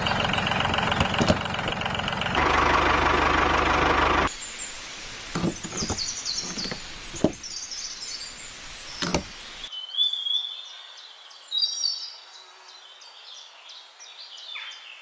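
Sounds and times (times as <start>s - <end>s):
birds chirping: 0.0s - 15.0s.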